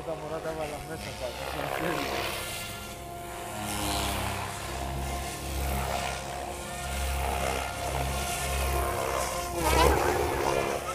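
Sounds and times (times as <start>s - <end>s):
rc helicopter motor whining: 0.0s - 10.9s.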